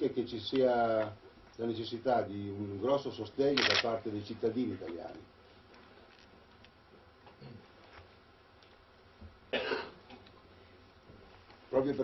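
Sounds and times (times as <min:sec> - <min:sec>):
person coughing: 0:09.5 - 0:10.0.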